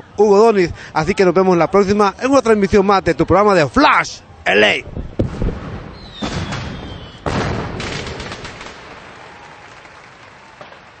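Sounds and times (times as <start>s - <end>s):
firework bang: 5.2s - 9.2s
firework crackles: 5.2s - 11.0s.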